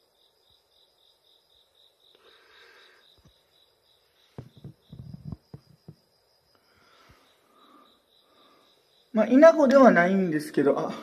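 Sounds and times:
cricket chirping: 0:00.0 - 0:11.0
faint insect trill: 0:00.0 - 0:11.0.

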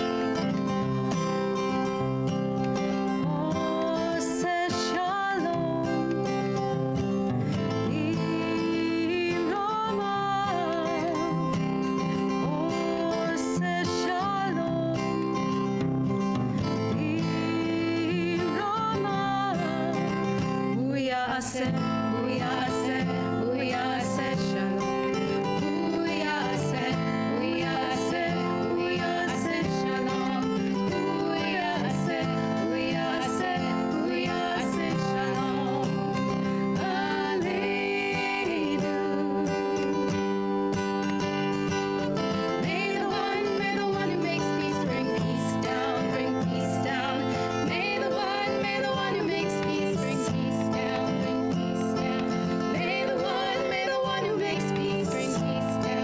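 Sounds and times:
strummed acoustic guitar: 0:00.0 - 0:56.0
women singing: 0:03.0 - 0:40.6, 0:41.7 - 0:56.0.

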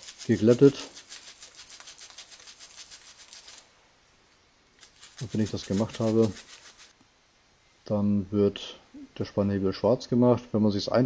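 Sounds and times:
sandpaper rubbing on steel: 0:00.0 - 0:03.7, 0:04.8 - 0:07.0.

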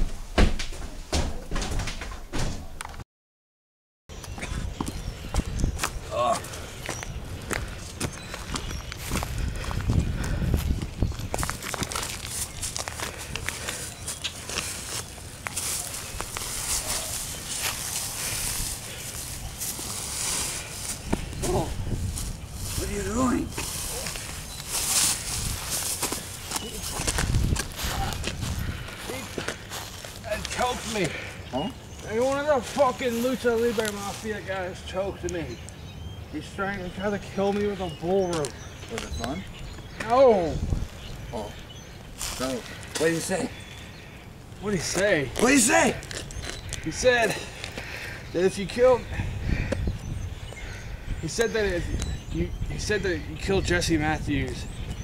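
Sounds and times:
footsteps scuffling on dry leaves: 0:05.8 - 0:31.2, 0:32.0 - 0:34.5, 0:42.0 - 0:43.2.

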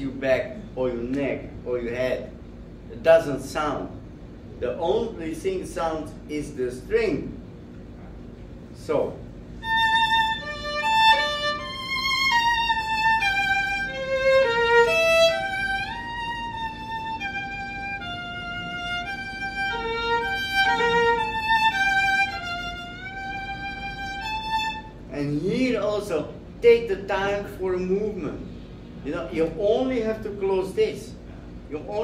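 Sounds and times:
solo violin melody: 0:09.6 - 0:24.9
man's voice: 0:25.1 - 0:28.3.

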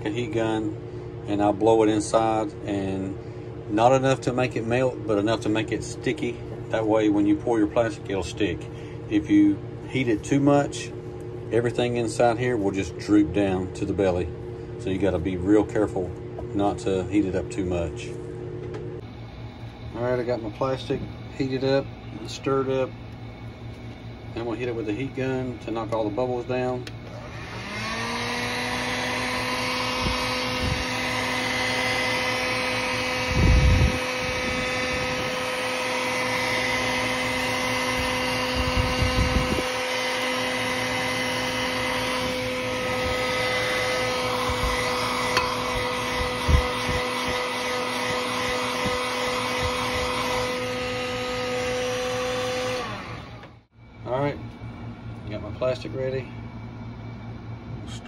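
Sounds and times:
heat gun fan humming: 0:00.0 - 0:58.0.

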